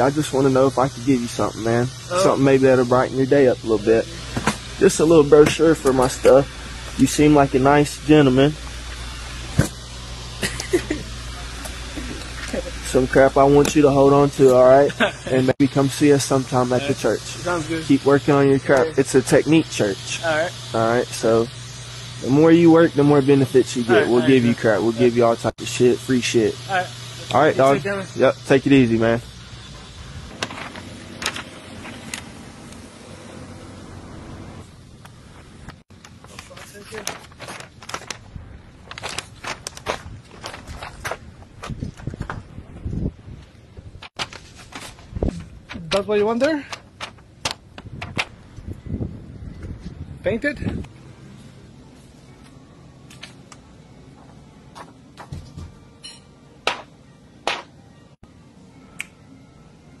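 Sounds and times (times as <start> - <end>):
store background hum: 0.0 - 60.0
finger snaps: 58.9 - 59.2.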